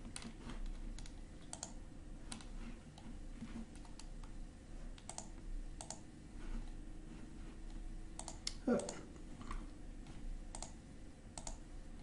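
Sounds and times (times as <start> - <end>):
computer keyboard clicks: 0.0 - 3.1, 3.7 - 4.3, 5.0 - 6.0, 8.2 - 9.0, 10.5 - 10.8, 11.4 - 11.6
faint steady hum: 0.0 - 12.0.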